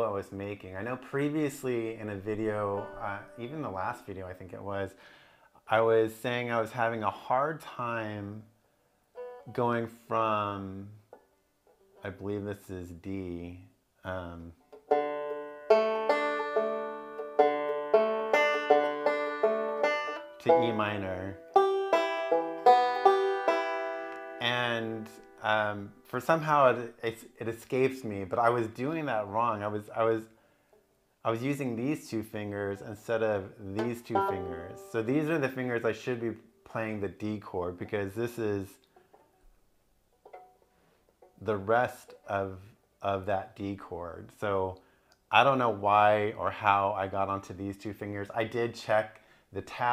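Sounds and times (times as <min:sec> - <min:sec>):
banjo picking: 0:00.0 - 0:08.4, 0:09.1 - 0:13.5, 0:14.1 - 0:44.8.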